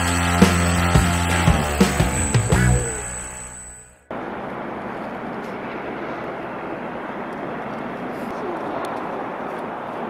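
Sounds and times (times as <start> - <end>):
propeller drone overhead: 0.0 - 10.0.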